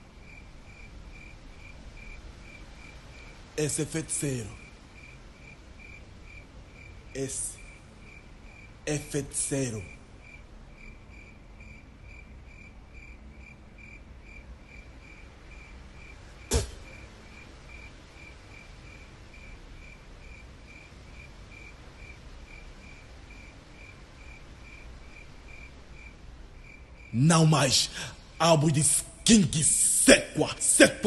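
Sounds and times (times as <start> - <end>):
cricket chirping: 0.0 - 31.0
faint room noise: 0.0 - 31.0.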